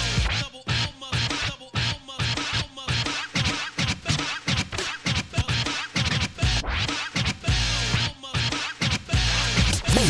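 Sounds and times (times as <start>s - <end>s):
backing beat with thudding bass: 0.0s - 10.0s
turntable scratching: 0.0s - 10.0s.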